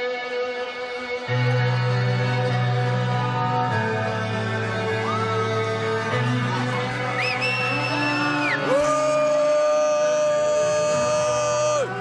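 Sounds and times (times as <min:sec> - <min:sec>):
loud live music: 0:00.0 - 0:12.0.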